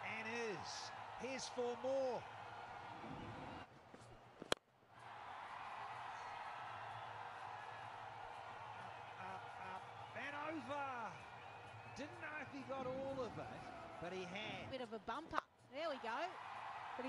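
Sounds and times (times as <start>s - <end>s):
stadium crowd noise: 0.0s - 15.1s, 15.8s - 17.0s.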